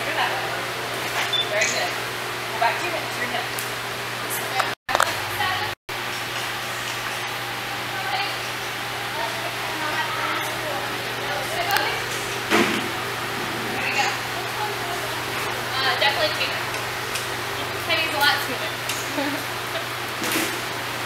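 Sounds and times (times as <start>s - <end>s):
steady low hum: 6.6s - 21.0s
indistinct voices talking: 7.9s - 19.7s.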